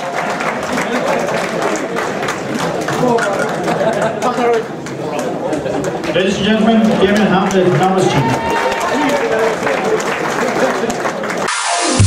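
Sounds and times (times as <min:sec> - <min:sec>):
audience clapping: 0:00.0 - 0:11.9
audience shouting: 0:07.8 - 0:09.9.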